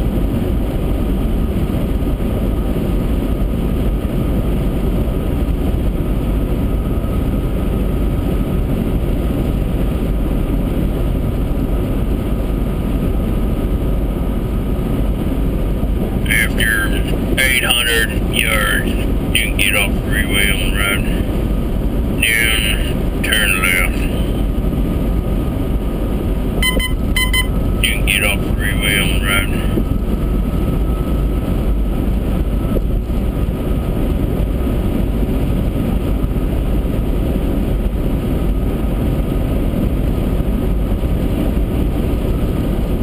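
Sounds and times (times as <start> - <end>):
car road and engine noise: 0.0 - 43.0.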